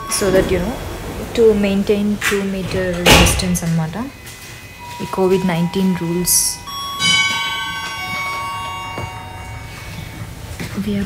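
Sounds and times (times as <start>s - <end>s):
chime ringing: 0.0s - 10.4s.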